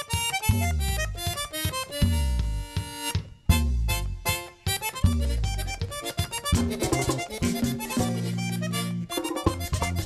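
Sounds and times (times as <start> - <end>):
bass: 0.0 - 10.0
button accordion melodic runs: 0.0 - 10.0
hand percussion: 0.0 - 10.0.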